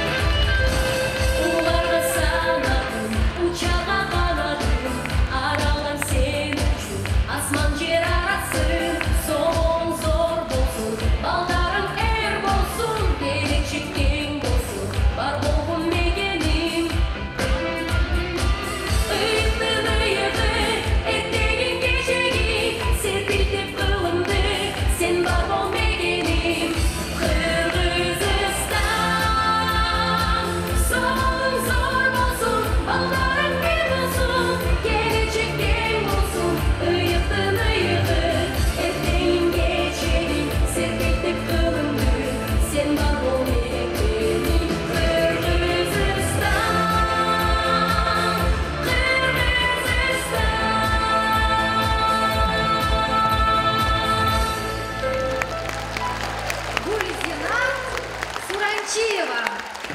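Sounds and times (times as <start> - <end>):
woman singing pop song: 0.0 - 55.2.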